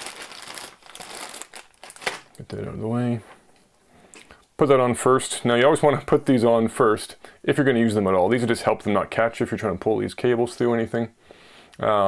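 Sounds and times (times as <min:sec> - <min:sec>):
plastic bags crinkling: 0:00.0 - 0:02.4.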